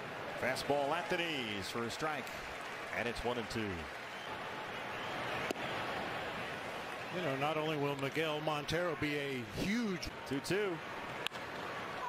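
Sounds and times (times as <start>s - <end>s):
ballpark crowd noise: 0.0s - 12.0s.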